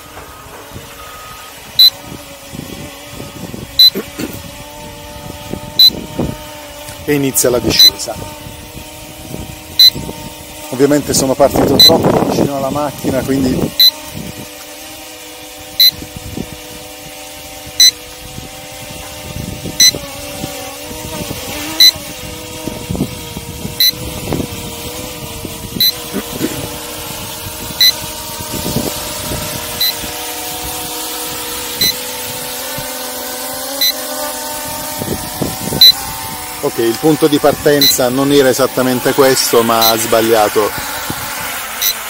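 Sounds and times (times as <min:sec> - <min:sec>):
drone motors humming: 0:00.0 - 0:42.0
short high-pitched beep: 0:01.0 - 0:02.0.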